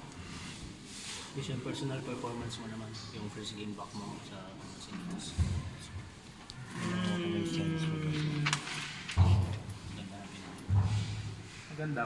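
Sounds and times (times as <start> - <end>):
man humming mmm: 6.7 - 8.6.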